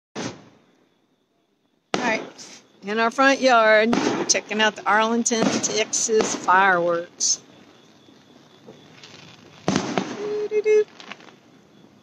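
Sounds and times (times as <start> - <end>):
distant fireworks bang: 0.2 - 0.7, 1.9 - 11.9.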